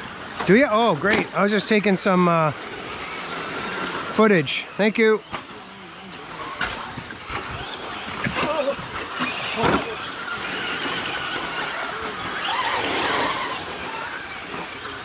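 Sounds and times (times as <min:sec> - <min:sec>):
electric motors whining: 0:00.0 - 0:15.0.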